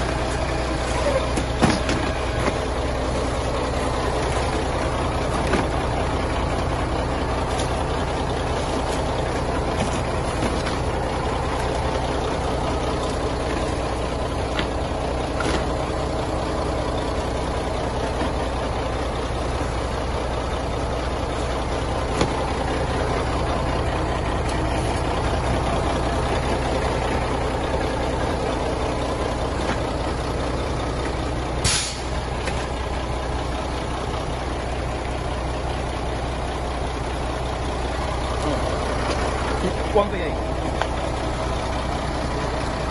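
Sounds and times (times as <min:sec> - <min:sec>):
truck engine idling: 0:00.0 - 0:42.9
short burst of hiss: 0:31.6 - 0:32.1.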